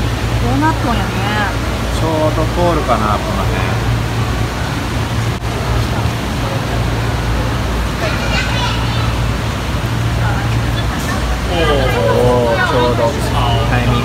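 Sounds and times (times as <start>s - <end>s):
faint voices: 0.0s - 14.0s
pump machinery hum: 0.0s - 14.0s
water circulating in aquarium: 0.0s - 14.0s.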